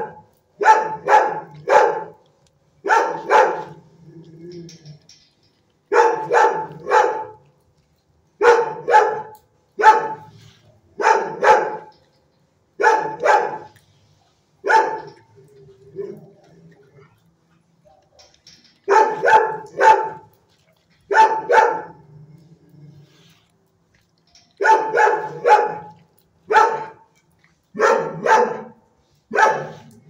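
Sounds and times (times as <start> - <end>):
dog barking: 0.0 - 2.2, 2.8 - 3.8, 5.9 - 7.4, 8.4 - 10.3, 11.0 - 11.9, 12.8 - 13.8, 14.6 - 15.2, 18.9 - 20.3, 21.1 - 22.0, 24.6 - 27.1, 27.8 - 29.9.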